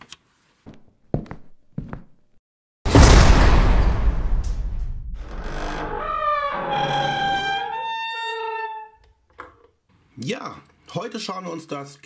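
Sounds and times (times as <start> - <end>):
low rumble: 3.0 - 6.4.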